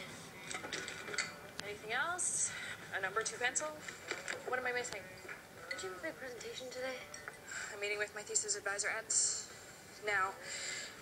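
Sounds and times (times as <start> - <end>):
dishes and utensils clinking: 0.4 - 1.5.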